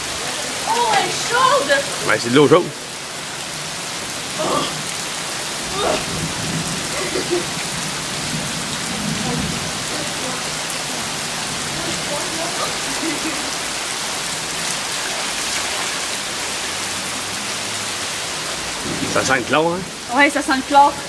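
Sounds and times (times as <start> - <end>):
heavy rain on water: 0.0 - 21.0.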